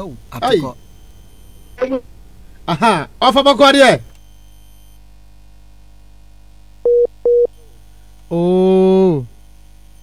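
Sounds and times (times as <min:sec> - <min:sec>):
low mains hum: 0:00.0 - 0:10.0
short electronic beeps: 0:04.2 - 0:05.0.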